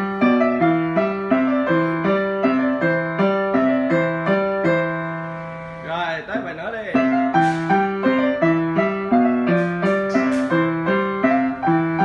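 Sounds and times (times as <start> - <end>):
upright piano notes: 0.0 - 12.0.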